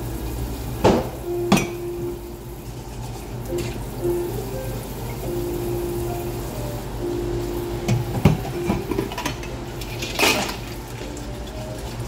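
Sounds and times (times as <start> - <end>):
kitchen faucet running: 0.0 - 12.0.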